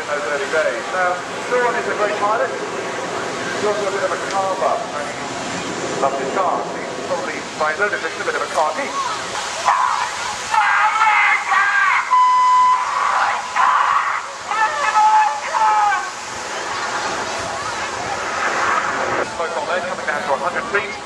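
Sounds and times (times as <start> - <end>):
distant jet noise: 0.0 - 21.0
voices: 0.0 - 21.0.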